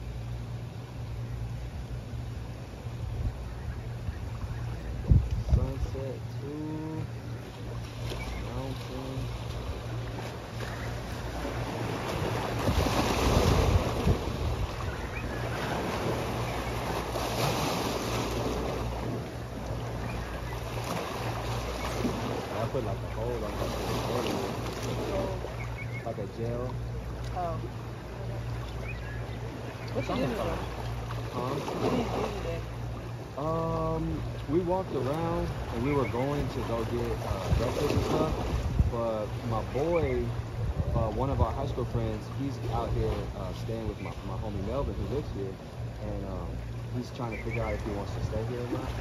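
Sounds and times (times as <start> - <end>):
wind on microphone: 3.0 - 7.0, 8.0 - 22.6, 37.1 - 43.4
sea waves washing over rocks: 8.0 - 25.6.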